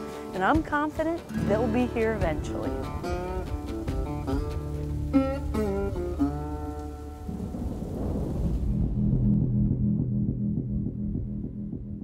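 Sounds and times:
rain: 0.0 - 0.4, 2.6 - 9.8
held guitar-like chord: 1.3 - 7.6
thunder rolling: 5.5 - 12.0
low pulsing synth beat: 8.6 - 12.0.

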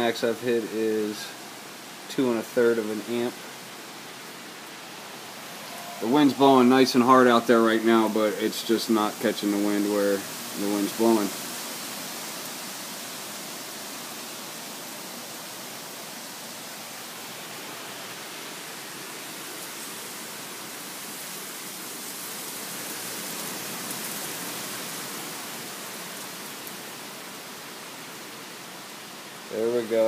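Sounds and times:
strong wind in trees: 0.0 - 30.0.

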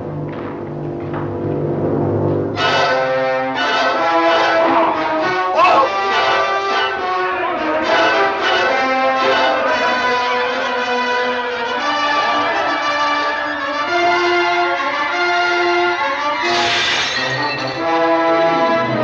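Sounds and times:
orchestral brass chords: 2.6 - 16.2.

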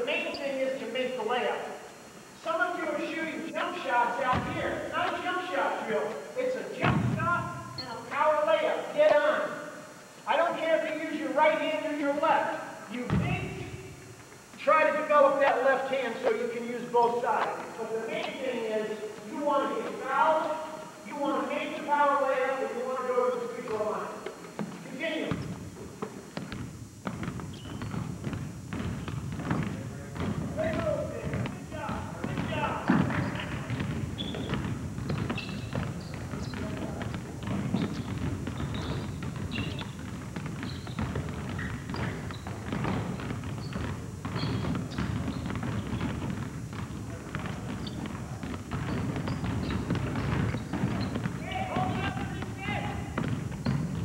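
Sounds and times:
basketballs bouncing on hardwood: 4.2 - 6.2, 6.8 - 8.1, 13.0 - 14.7, 22.8 - 54.0.

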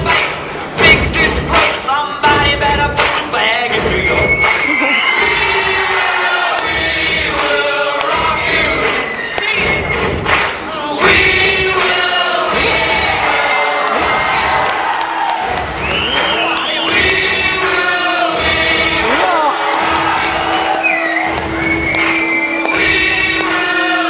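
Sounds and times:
music over sound system: 0.0 - 24.0
crowd cheering and screaming: 4.3 - 6.6, 8.7 - 9.8, 12.8 - 17.1, 18.9 - 23.0.

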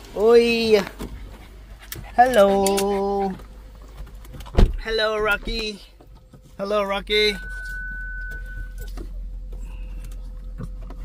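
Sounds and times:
car engine idling: 0.0 - 11.0
thin high tone: 6.8 - 9.0.

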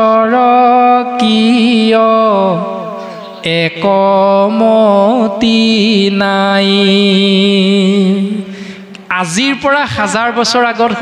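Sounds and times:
man chanting through microphone: 0.0 - 8.5, 9.1 - 11.0.

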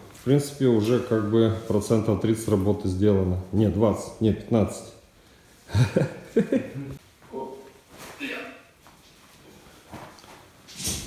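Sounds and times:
man speaking: 0.2 - 5.0.

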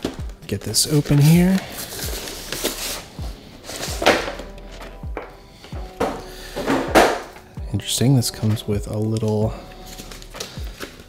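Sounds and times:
packaging knocks and rustles: 0.0 - 7.4, 8.4 - 11.0
background music: 0.0 - 11.0.

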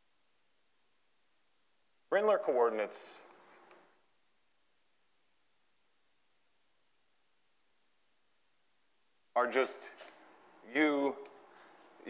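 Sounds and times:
chalk tapping: 3.2 - 4.1.

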